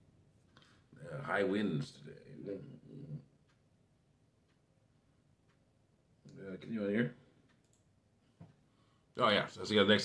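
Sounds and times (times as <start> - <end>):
faint clicks: 4.4 - 4.7, 5.4 - 6.4, 7.4 - 8.6.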